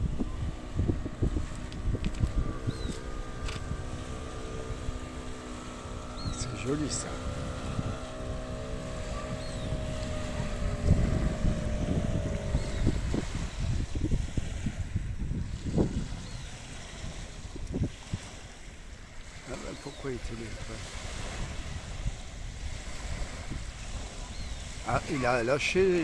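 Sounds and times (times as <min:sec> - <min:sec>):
distant engine droning: 0:00.0 - 0:26.0
small waves lapping on shore: 0:00.0 - 0:26.0
wind buffeting microphone: 0:00.0 - 0:26.0.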